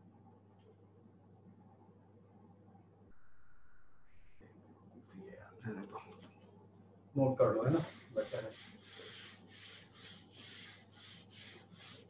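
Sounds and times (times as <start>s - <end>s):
duster wiping a whiteboard: 7.4s - 12.0s.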